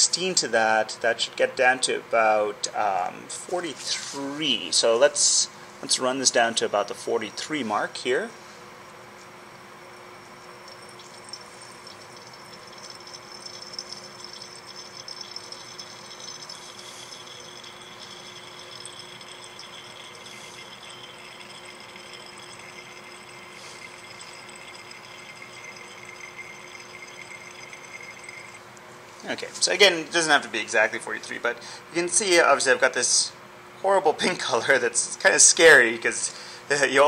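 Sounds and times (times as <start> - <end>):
room hum: 0.0 - 37.0
liquid trickling into flask: 9.9 - 28.6.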